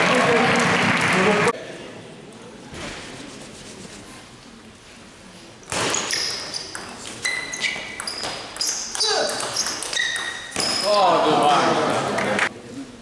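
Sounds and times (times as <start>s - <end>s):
table tennis ball pings: 7.9s - 10.9s.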